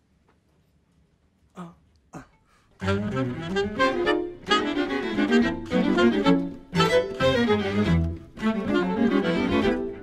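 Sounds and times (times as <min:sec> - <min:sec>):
alto saxophone: 0:02.8 - 0:10.0
string quartet: 0:02.8 - 0:10.0.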